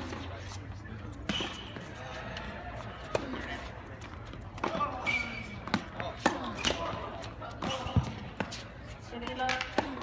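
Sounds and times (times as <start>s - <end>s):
murmur of voices: 0.0s - 10.0s
tennis ball struck: 9.2s - 10.0s.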